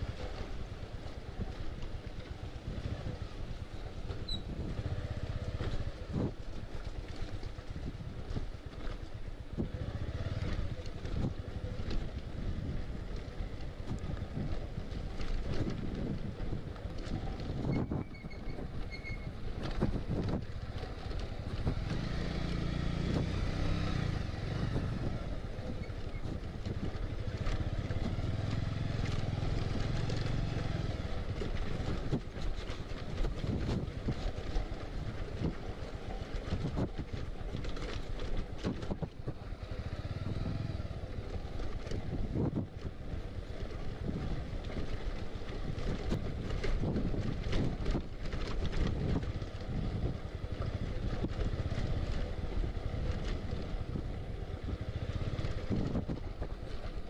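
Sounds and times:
motorcycle engine running: 0.0s - 57.0s
wind noise on microphone: 0.0s - 57.0s.

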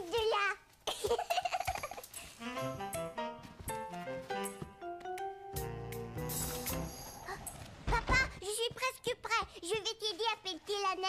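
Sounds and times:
light cartoon music: 1.5s - 7.8s.

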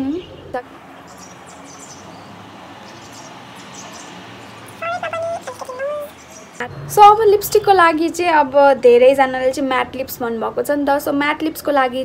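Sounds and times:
high-pitched animal call: 4.7s - 6.7s.

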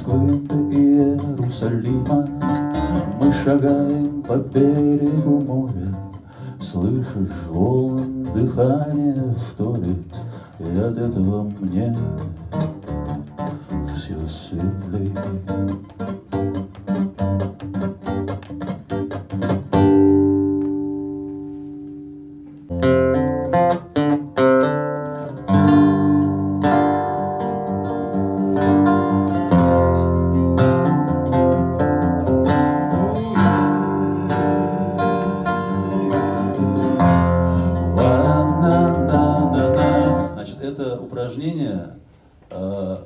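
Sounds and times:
acoustic guitar picking: 0.0s - 41.2s.

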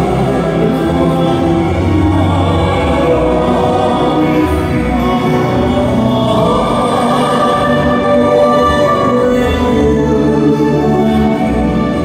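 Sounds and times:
male voices harmonising: 0.0s - 12.0s
tenor singing into a microphone: 0.0s - 12.0s.

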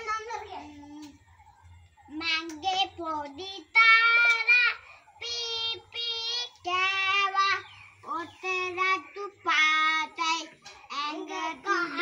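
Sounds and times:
young boy singing: 2.1s - 12.0s.

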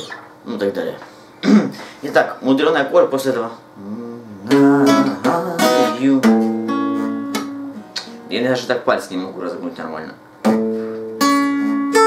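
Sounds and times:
acoustic guitar picked notes: 3.8s - 9.3s, 10.4s - 12.0s.

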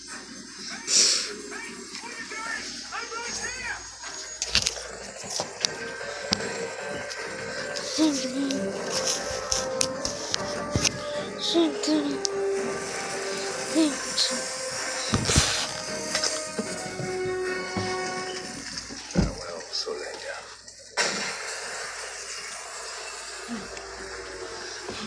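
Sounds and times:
cartoon music with voices on television: 0.0s - 25.0s
heavy thuds: 15.1s - 19.4s.

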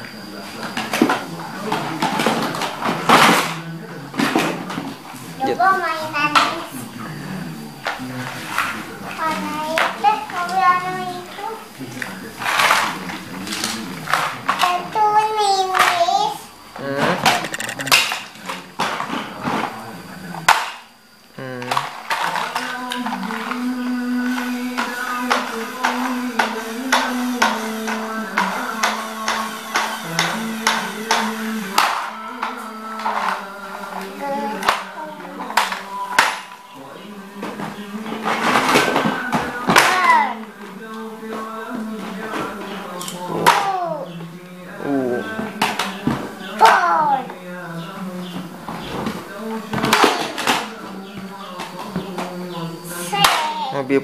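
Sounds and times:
plastic toys clattering: 12.4s - 14.8s, 17.2s - 19.6s, 21.7s - 23.6s, 37.4s - 40.4s, 48.8s - 52.4s
child vocalizing: 14.6s - 17.8s, 43.4s - 44.1s, 46.6s - 47.3s, 52.9s - 53.8s
simple electronic tune: 17.4s - 18.0s.

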